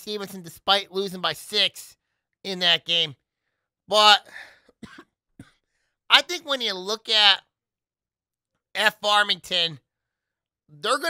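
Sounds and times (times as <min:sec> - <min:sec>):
man coughing and clearing throat: 0:04.2 - 0:05.6.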